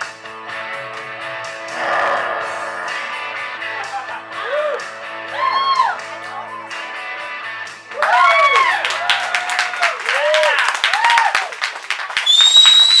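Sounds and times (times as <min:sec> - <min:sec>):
audience clapping and cheering: 0:07.9 - 0:13.0
loud high whistle: 0:12.2 - 0:13.0.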